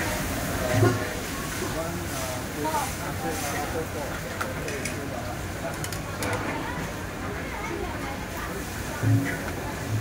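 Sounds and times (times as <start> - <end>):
noodles frying in a wok: 0.0 - 10.0.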